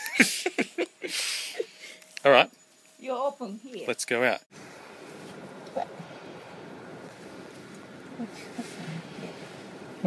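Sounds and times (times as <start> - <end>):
soft murmurs: 8.0 - 9.7.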